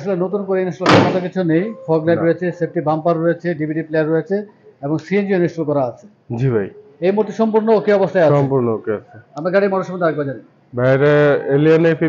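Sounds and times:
men talking: 0.0s - 12.0s
car bonnet slamming shut: 0.9s - 1.2s.

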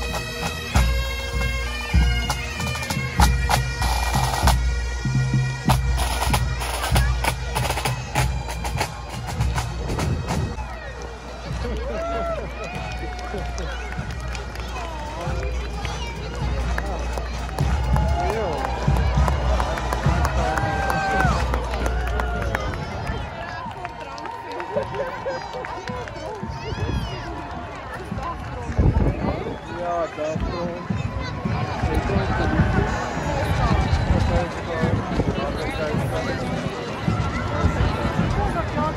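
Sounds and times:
crowd chatter: 0.0s - 38.9s
wind rumbling on microphone: 26.4s - 29.8s, 30.4s - 38.9s.

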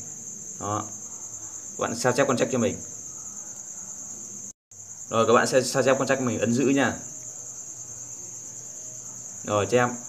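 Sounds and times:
faint low noise: 0.0s - 10.0s.

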